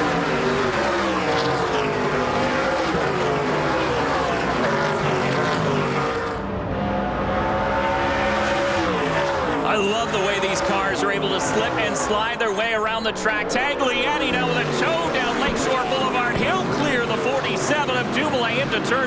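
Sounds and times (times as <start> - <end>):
race cars speeding past: 0.0 - 12.7.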